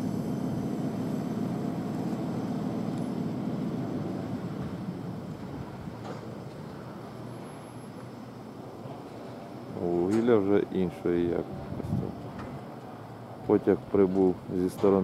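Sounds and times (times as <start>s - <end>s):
freight train rolling past: 0.0s - 15.0s.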